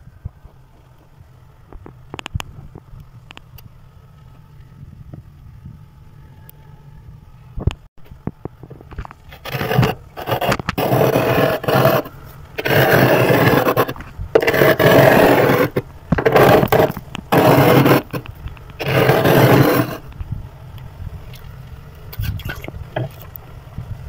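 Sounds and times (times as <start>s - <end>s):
spoon scraping frost off freezer: 9.3s - 20.0s.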